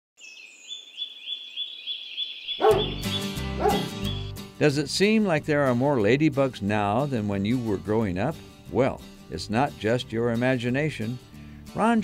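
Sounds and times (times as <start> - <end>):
higher bird call: 0.7 - 4.3
acoustic guitar music: 2.6 - 12.0.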